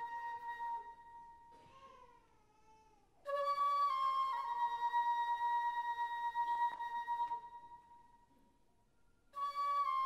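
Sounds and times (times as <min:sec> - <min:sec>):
flute notes: 0:00.0 - 0:01.8, 0:03.2 - 0:08.4, 0:09.2 - 0:10.0.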